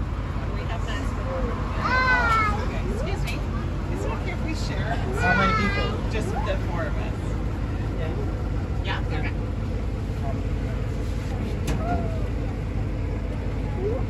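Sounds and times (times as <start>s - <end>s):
faint voices: 0.0s - 14.0s
low rumble of vehicle ride: 0.0s - 14.0s.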